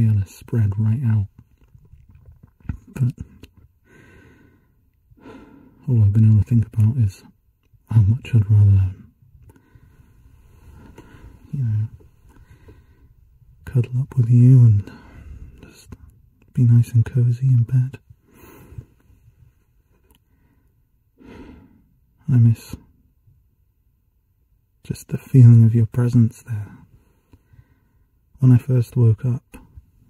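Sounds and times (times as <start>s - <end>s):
man speaking: 0.0s - 1.3s, 2.8s - 3.4s, 5.8s - 7.3s, 7.9s - 9.1s, 11.4s - 12.0s, 13.6s - 18.0s, 22.2s - 22.8s, 24.8s - 26.8s, 28.4s - 29.7s
man sighing breaths: 3.8s - 5.8s, 9.5s - 13.3s, 14.8s - 15.6s, 20.3s - 22.0s.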